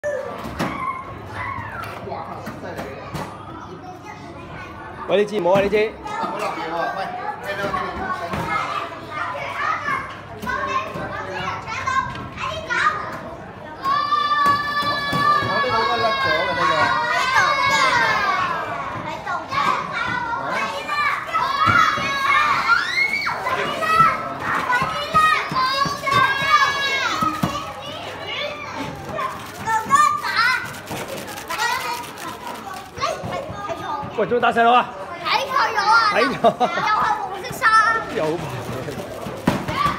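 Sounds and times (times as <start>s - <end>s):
children chattering and calling out: 0.0s - 39.9s.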